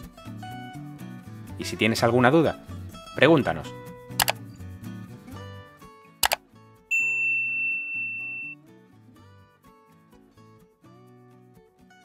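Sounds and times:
notification bell ding: 0:06.2 - 0:08.6.

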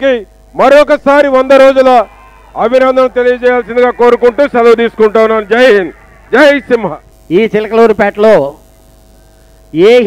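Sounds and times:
man speaking into a microphone: 0:00.0 - 0:08.6, 0:09.7 - 0:10.0
electrical mains hum: 0:00.0 - 0:10.0.

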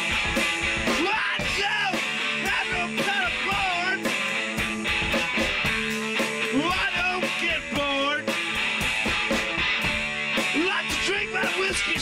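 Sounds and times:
drum kit playing: 0:00.0 - 0:12.0
electric guitar with sliding notes: 0:00.0 - 0:12.0.

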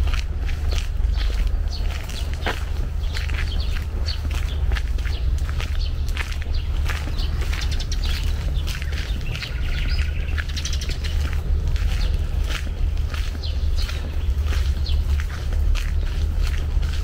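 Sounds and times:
birds chirping: 0:00.0 - 0:17.0
footsteps on dirt path: 0:00.0 - 0:17.0
steady low rumble: 0:00.0 - 0:17.0.

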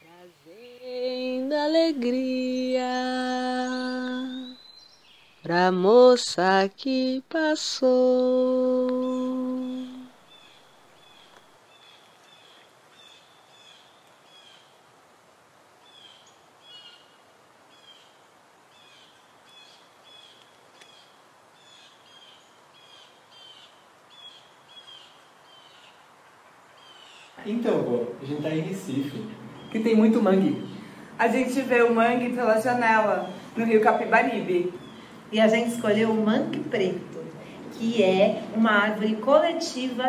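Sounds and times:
outdoor background hiss: 0:00.0 - 0:40.0
small bird chirping: 0:02.4 - 0:05.7.

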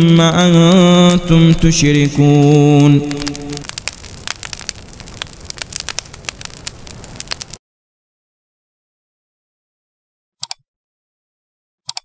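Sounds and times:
wood fire crackling: 0:00.0 - 0:07.6.

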